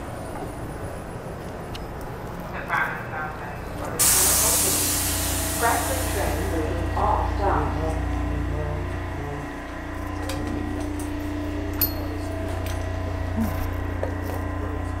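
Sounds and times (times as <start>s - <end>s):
subway car hum and rumble: 0.0s - 15.0s.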